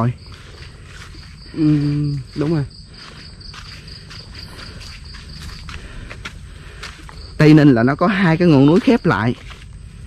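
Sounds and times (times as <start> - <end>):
footsteps on dirt trail: 0.0 - 10.0
night insects chirping: 0.0 - 10.0.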